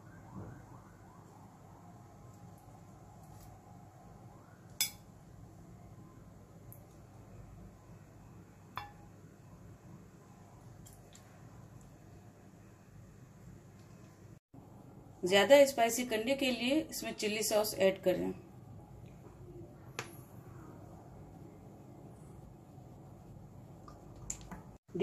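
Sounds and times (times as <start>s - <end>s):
metal tongs clinking on dishes: 4.8s - 5.0s.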